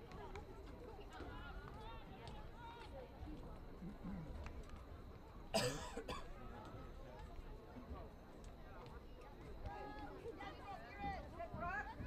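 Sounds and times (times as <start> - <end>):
faint background voices: 0.0 - 12.0
person coughing: 5.6 - 6.2.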